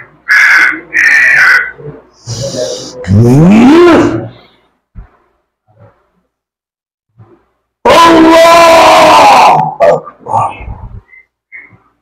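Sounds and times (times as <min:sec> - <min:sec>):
man crying out: 0:07.9 - 0:09.9.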